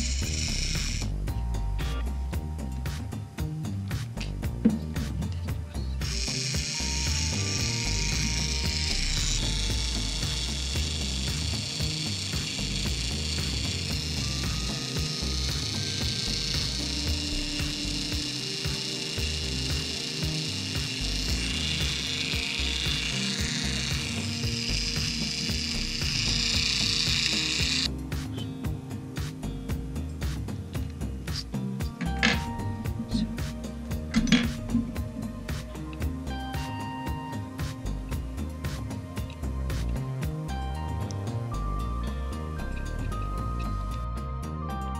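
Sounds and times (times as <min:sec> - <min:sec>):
servo motor whirring with gear chatter: 0:00.0 - 0:01.2, 0:06.0 - 0:27.9
background music: 0:00.0 - 0:44.9.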